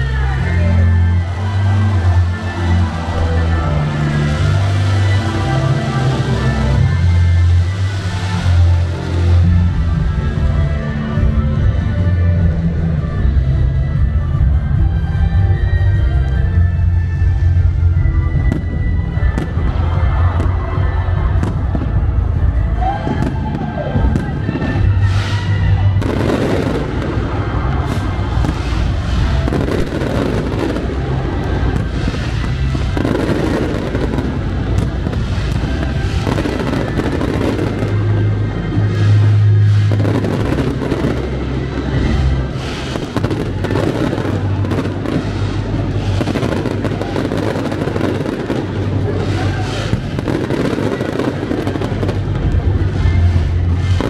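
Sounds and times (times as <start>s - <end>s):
fireworks bursting: 0.0s - 54.0s
music: 0.0s - 54.0s.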